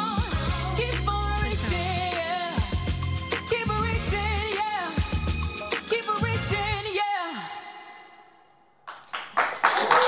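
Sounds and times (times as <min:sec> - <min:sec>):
woman singing with vibrato: 0:00.0 - 0:02.9, 0:03.5 - 0:08.4
backing music: 0:00.0 - 0:07.0.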